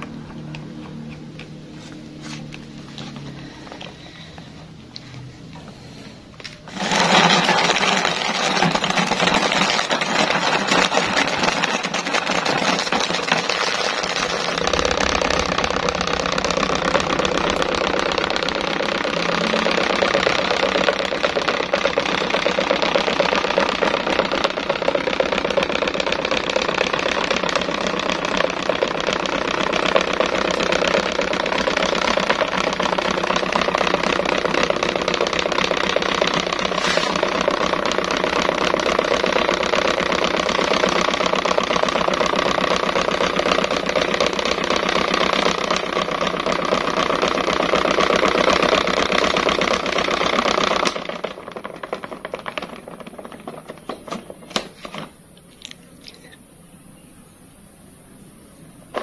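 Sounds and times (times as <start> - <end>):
pedestal fan whirring: 0.0 - 59.0.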